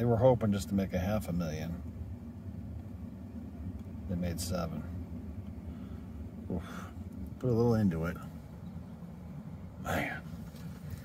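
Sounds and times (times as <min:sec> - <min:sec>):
car rumble from inside cabin: 0:00.0 - 0:11.0.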